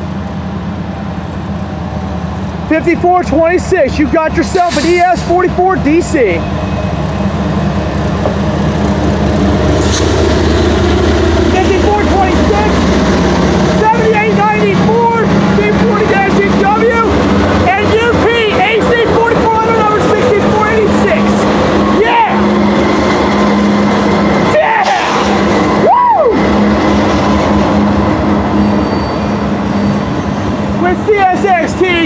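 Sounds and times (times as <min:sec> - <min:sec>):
diesel locomotive engine drone: 0:00.0 - 0:32.0
freight cars rolling past: 0:00.0 - 0:32.0.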